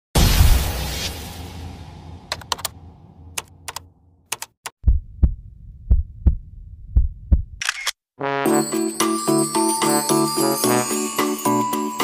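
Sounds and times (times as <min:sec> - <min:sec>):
sharp clicks: 0:03.4 - 0:04.8, 0:07.6 - 0:08.0
low heartbeat-like thumps: 0:04.8 - 0:07.6
low rumble: 0:04.8 - 0:07.6.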